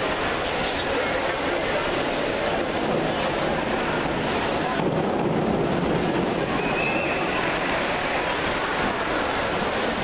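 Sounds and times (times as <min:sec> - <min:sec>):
crowd chatter echoing: 0:00.0 - 0:10.0
water noise: 0:00.0 - 0:10.0.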